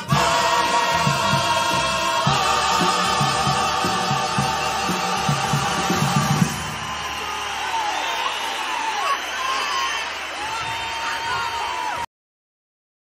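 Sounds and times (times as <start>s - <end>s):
choir with guitars over beat: 0.0s - 6.8s
audience cheering and whooping: 5.4s - 12.1s.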